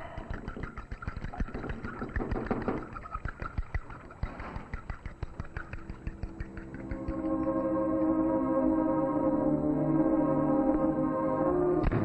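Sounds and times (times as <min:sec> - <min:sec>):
egg beater clattering in bowl: 0:00.0 - 0:07.1.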